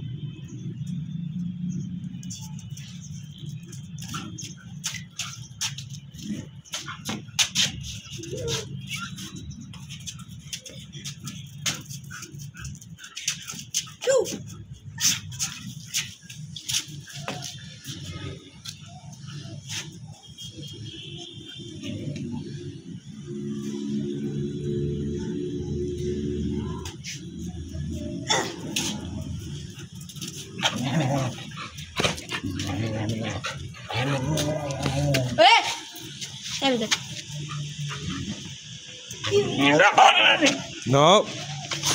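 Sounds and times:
clicks and scuffs of dogs playing: 1.8s - 20.9s, 26.4s - 41.9s
dogs barking: 39.2s - 40.8s.

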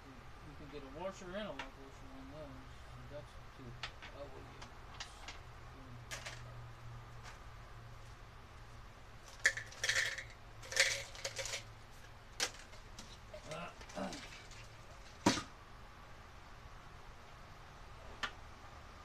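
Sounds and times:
metal hardware clinking: 9.4s - 11.6s.

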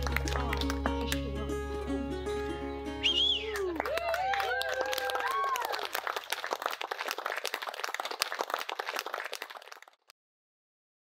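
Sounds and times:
people clapping: 0.0s - 1.4s, 3.4s - 10.1s
people cheering: 3.0s - 9.8s.

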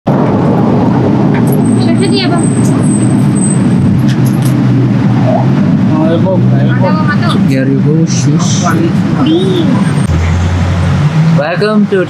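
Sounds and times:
street traffic engines rumbling: 0.1s - 12.0s
voices: 1.3s - 12.0s.

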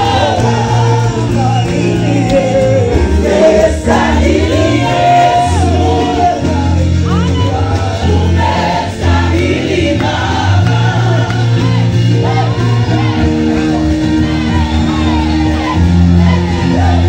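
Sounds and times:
amplified band with heavy bass: 0.0s - 17.0s
choir singing gospel music: 0.0s - 17.0s.

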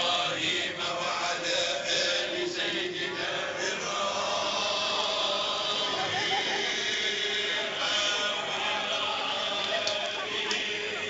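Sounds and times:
many voices chanting: 0.0s - 11.0s.

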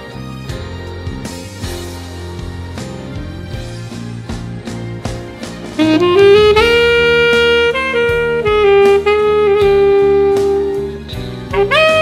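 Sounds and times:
saxophone playing: 5.8s - 12.0s.

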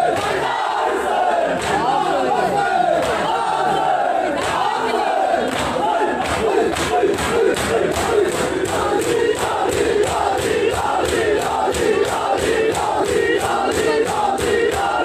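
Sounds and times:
men chanting together: 0.0s - 15.0s
chest-beating slaps: 1.6s - 1.9s, 3.0s - 3.3s, 4.4s - 4.8s, 5.5s - 15.0s.

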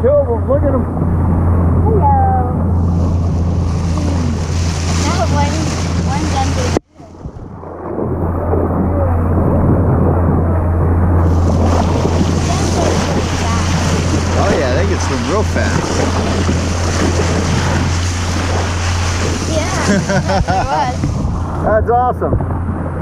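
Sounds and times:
outboard motor running: 0.0s - 23.0s
water splashing along bow: 0.0s - 23.0s
wind buffeting microphone: 0.0s - 23.0s.

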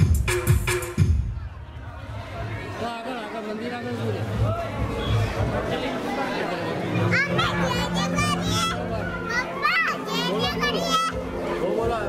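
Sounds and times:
children calling and squealing: 6.9s - 11.5s.

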